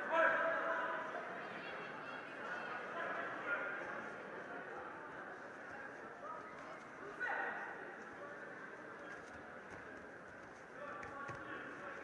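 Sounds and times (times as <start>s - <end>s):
crowd chatter echoing: 0.0s - 12.0s.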